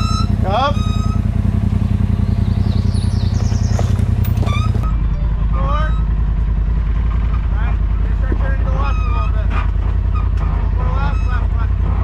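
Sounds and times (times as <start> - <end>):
voices: 0.0 - 6.3, 7.2 - 12.0
engine running at low revs: 0.0 - 12.0.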